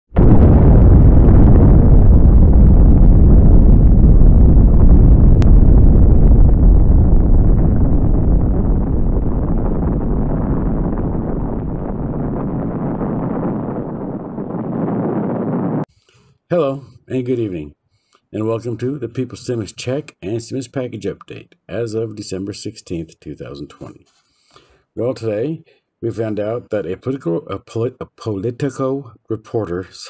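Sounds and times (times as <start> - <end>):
deep rumbling explosion: 0.1 - 15.9.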